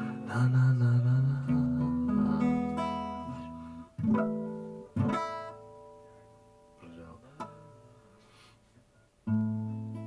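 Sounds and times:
acoustic guitar strums: 0:00.0 - 0:10.0.

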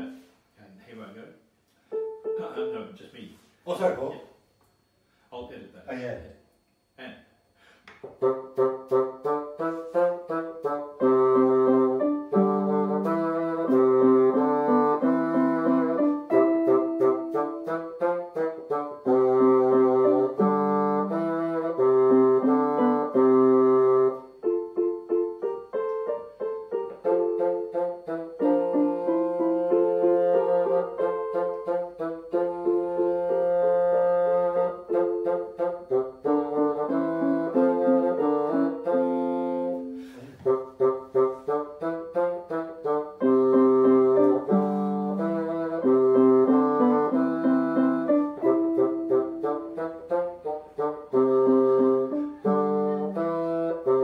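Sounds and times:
electronic keyboard: 0:01.9 - 0:03.0, 0:08.2 - 0:54.0
bassoon: 0:08.2 - 0:54.0.

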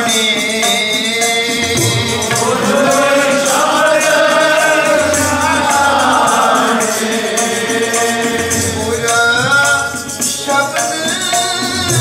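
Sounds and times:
men chanting a hymn: 0:00.0 - 0:10.0
harmonium chords: 0:00.0 - 0:12.0
tabla rhythm: 0:00.0 - 0:12.0.

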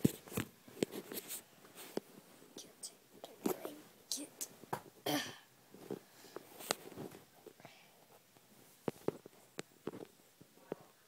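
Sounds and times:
soft whispering: 0:02.5 - 0:04.6, 0:07.5 - 0:08.2.

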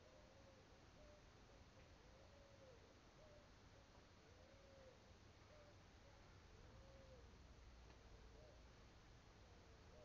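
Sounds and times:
faint animal call: 0:00.0 - 0:07.3, 0:09.5 - 0:10.0.

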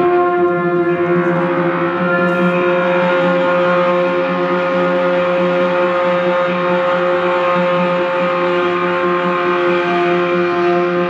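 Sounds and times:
jazz ensemble droning: 0:00.0 - 0:11.0.

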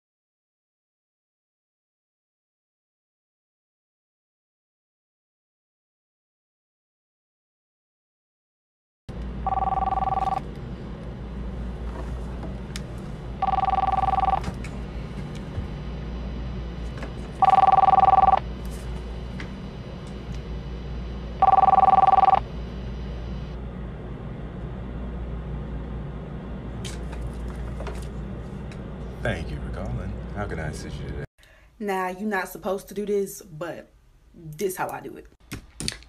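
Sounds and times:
background hum: 0:09.1 - 0:36.0
two-tone telephone ring: 0:09.4 - 0:10.4, 0:13.4 - 0:14.4, 0:17.4 - 0:18.4, 0:21.4 - 0:22.4.

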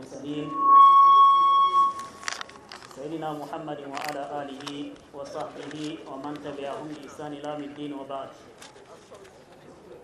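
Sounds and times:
microphone feedback whistle: 0:00.0 - 0:02.4.

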